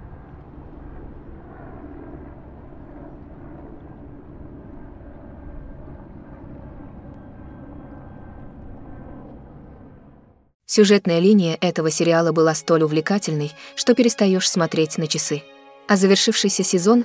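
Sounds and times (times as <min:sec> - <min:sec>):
low rumbling noise: 0:00.0 - 0:10.6.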